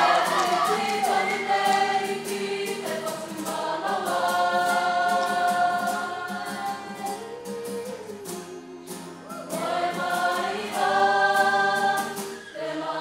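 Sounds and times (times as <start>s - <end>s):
choir singing sustained notes: 0.0s - 7.5s, 9.4s - 13.0s.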